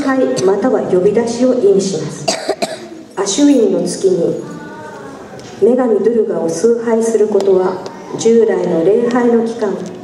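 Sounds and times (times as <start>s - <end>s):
woman narrating into a microphone: 0.0s - 4.6s, 5.6s - 10.0s.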